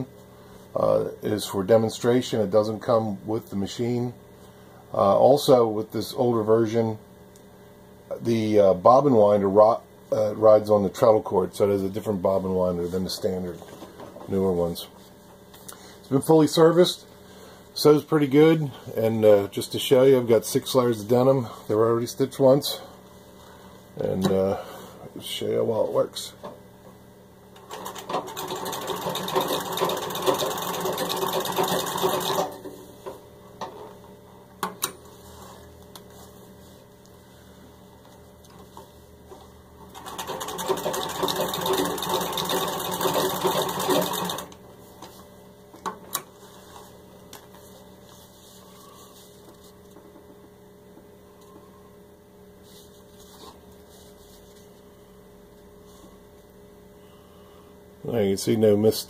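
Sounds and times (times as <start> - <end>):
sewing machine clicks: 27.6 - 32.6, 40.0 - 44.6
treadle sewing machine stitching: 27.6 - 32.6, 39.9 - 44.6.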